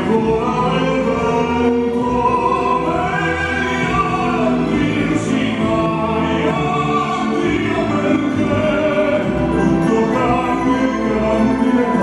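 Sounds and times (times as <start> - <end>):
man singing operatic notes: 0.0 - 12.0
musical accompaniment: 0.0 - 12.0.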